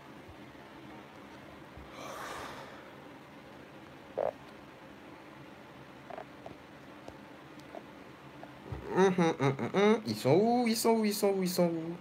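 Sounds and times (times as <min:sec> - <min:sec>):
steady room hiss: 0:00.0 - 0:12.0
man breathing out: 0:01.9 - 0:03.0.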